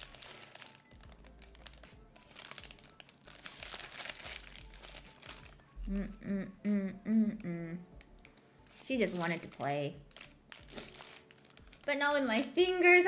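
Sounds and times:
paper wrapper crinkling: 0.0s - 6.1s, 8.0s - 12.8s.

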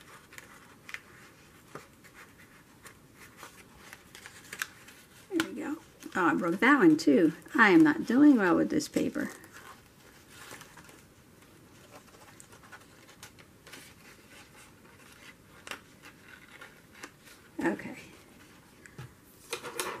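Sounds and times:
paper rustling and scratching: 0.0s - 18.8s.

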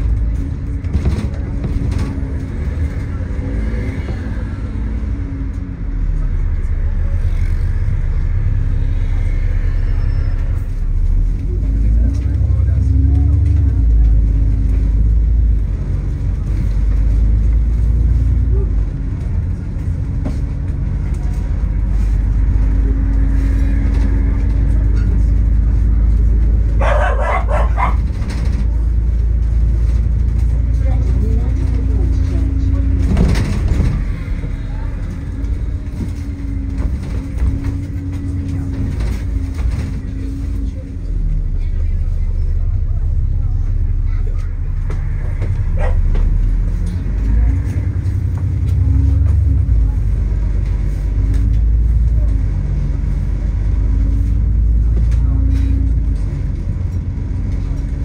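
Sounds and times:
bus engine and road rumble: 0.0s - 58.0s.

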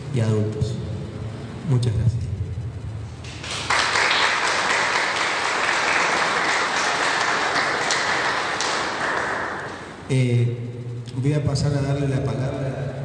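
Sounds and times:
audience applauding: 3.2s - 10.0s.

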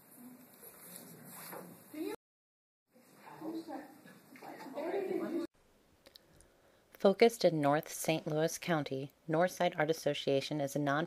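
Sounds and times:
indistinct voices in a room: 2.9s - 5.6s.

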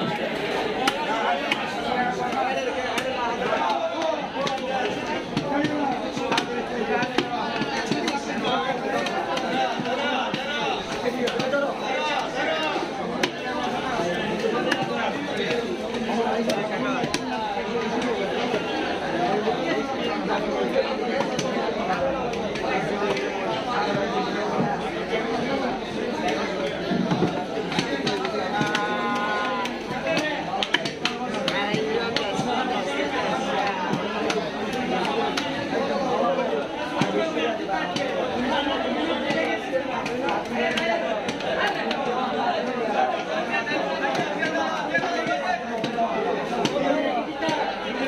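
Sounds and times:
market chatter: 0.0s - 48.0s.

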